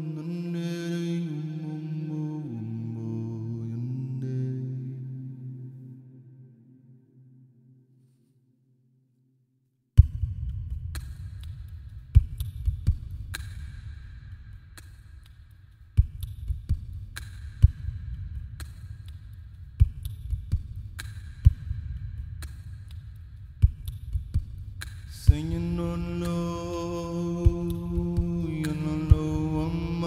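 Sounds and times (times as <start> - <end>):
sharp thumps and clicks: 14.7 - 25.5.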